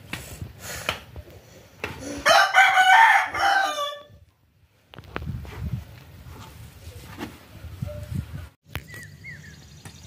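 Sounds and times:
rooster crowing: 2.2 - 4.2.

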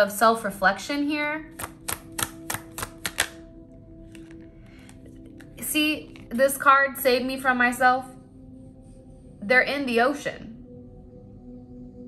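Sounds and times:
soft music drone: 0.0 - 12.0
cards clicking against table: 1.6 - 3.4, 4.1 - 6.3.

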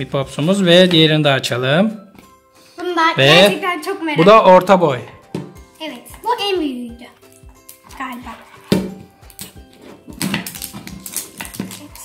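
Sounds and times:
light background music: 0.0 - 12.0
plastic capsule cracking: 8.6 - 12.0.

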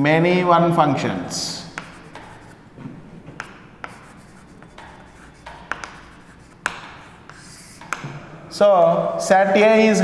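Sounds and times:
chalk tapping on board: 1.5 - 2.6, 3.2 - 8.2
chalk scratching on blackboard: 1.5 - 2.7, 3.3 - 8.1.

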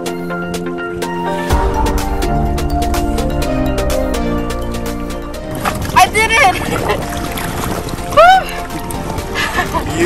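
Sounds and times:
water sloshing and splashing: 5.3 - 10.0.

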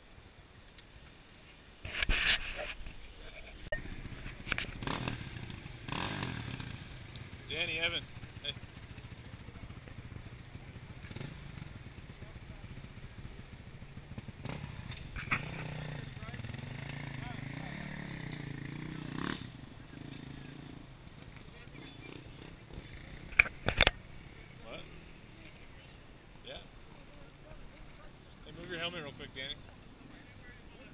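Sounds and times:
dirt bike engine idling: 3.5 - 30.9.

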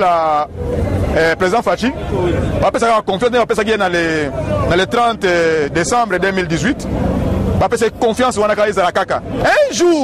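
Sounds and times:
passing motor vehicle rumble: 0.0 - 10.0
man speaking: 1.2 - 6.9, 7.6 - 10.0.

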